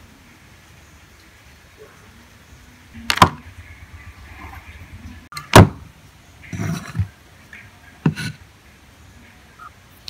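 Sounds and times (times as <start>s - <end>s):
sharp knock: 3.1s - 3.5s.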